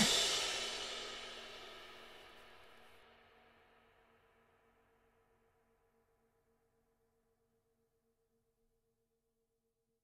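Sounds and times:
crash cymbal hit: 0:00.0 - 0:02.4.

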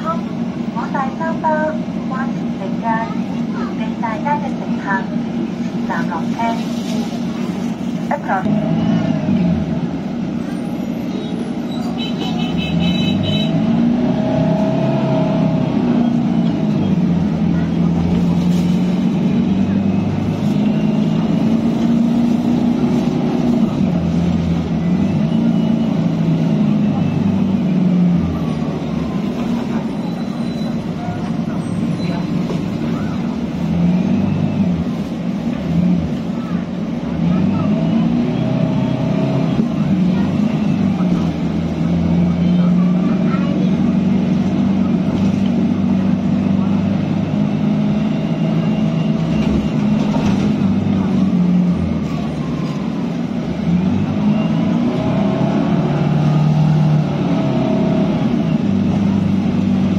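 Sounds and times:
faint passengers' voices: 0:00.0 - 0:12.6, 0:14.1 - 0:59.9
bus engine droning: 0:00.0 - 0:59.9.

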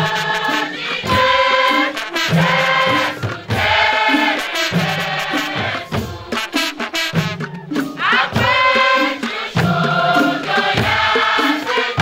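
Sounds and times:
choir chanting: 0:00.0 - 0:12.0
hand drums beating: 0:00.0 - 0:12.0.

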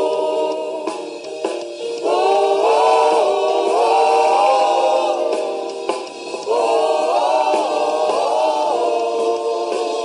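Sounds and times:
group singing in harmony: 0:00.0 - 0:10.0.

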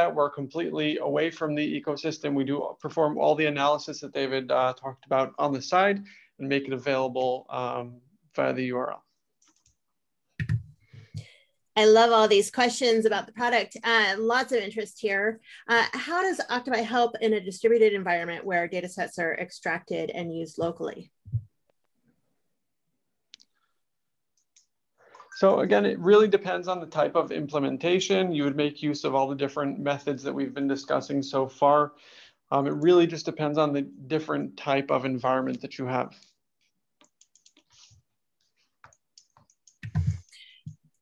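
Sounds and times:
computer keys clicking: 0:37.0 - 0:37.8, 0:38.8 - 0:40.8.

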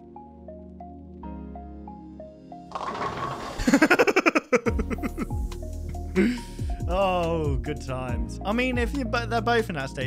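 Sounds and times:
man laughing hard: 0:03.6 - 0:05.4.

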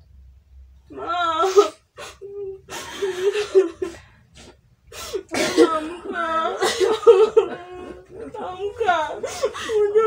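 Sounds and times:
women's strained vocal outburst: 0:05.1 - 0:10.0.

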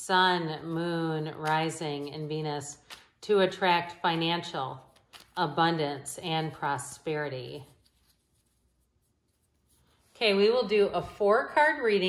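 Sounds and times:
cards being shuffled: 0:00.6 - 0:03.2, 0:04.7 - 0:05.6.

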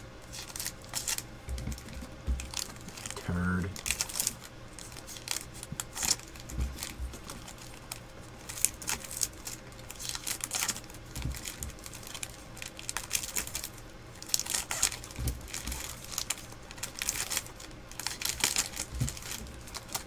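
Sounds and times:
foil wrappers crinkling and tearing: 0:00.2 - 0:20.0.

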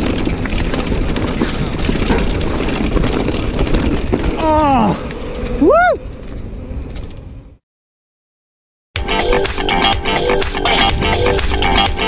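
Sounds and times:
bike rattling and clicking: 0:00.0 - 0:07.6
bike tyres rumbling on gravel: 0:00.0 - 0:07.6
wind buffeting microphone: 0:00.0 - 0:07.6.

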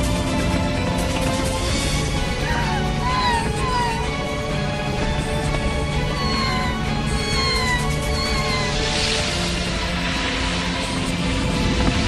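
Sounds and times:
dramatic background music: 0:00.0 - 0:12.0
animated deer crying out: 0:02.4 - 0:04.7, 0:05.9 - 0:09.0.

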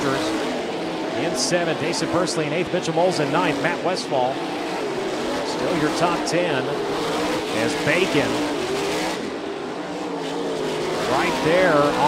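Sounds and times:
race car engines droning: 0:00.0 - 0:12.0.

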